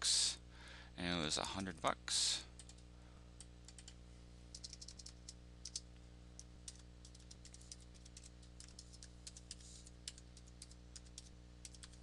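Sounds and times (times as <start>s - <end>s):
low electrical hum: 0.0s - 12.0s
keyboard keystrokes: 4.5s - 5.8s.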